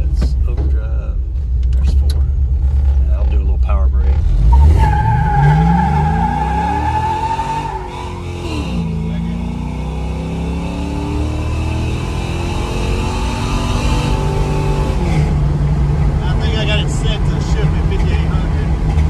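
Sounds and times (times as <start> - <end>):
car engine under full throttle: 0.0 - 19.0.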